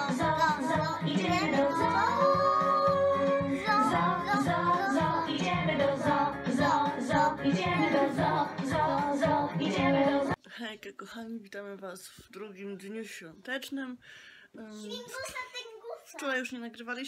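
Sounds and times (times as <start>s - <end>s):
backing track through small speaker: 0.0s - 10.4s
girls singing karaoke: 0.0s - 10.4s.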